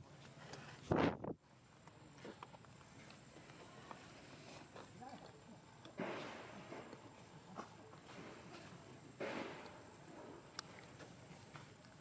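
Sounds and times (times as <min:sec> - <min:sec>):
faint outdoor background: 0:00.0 - 0:12.0.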